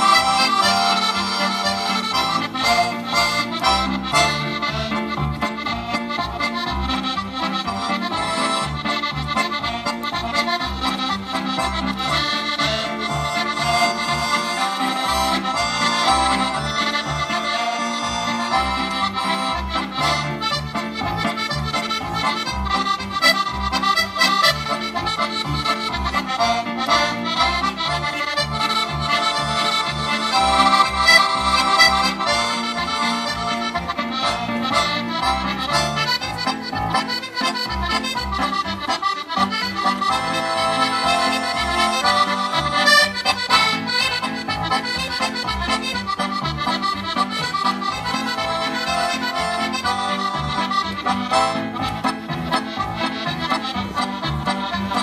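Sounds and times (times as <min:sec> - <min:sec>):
traditional folk music: 0:00.0 - 0:55.0.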